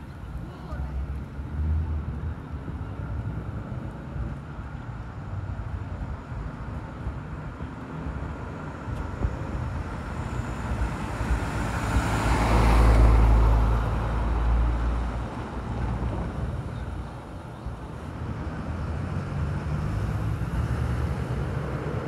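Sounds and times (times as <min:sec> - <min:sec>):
vehicle passing by: 0:10.9 - 0:17.1, 0:18.0 - 0:22.0.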